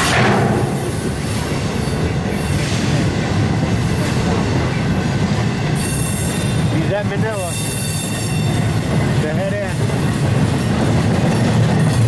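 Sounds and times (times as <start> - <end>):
steel wheels rumbling on rail: 0.0 - 12.0.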